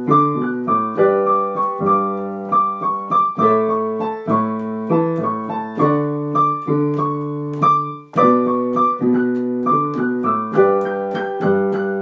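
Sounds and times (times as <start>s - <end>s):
solo piano playing chords: 0.0s - 12.0s.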